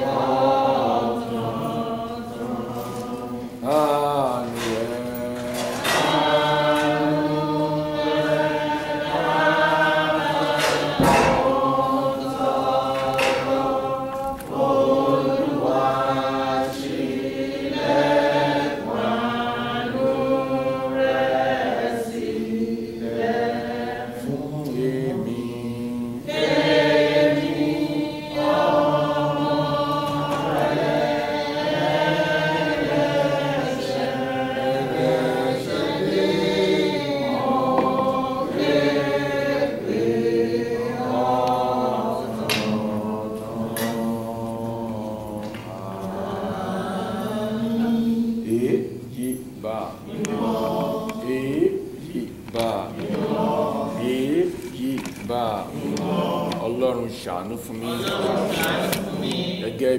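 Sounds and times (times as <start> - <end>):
group singing a hymn: 0.0 - 59.9.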